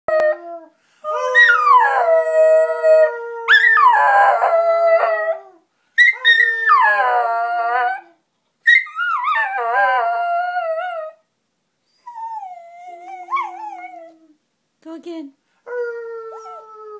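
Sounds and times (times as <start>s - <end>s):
dog howling: 15.8s - 16.9s.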